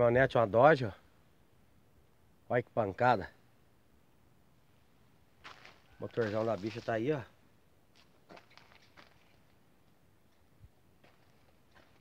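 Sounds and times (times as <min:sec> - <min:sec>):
faint rustle: 0:04.5 - 0:12.0.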